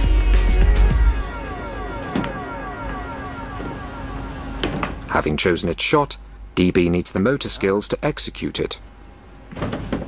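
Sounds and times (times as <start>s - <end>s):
whining tone falling in pitch: 0.9s - 5.2s.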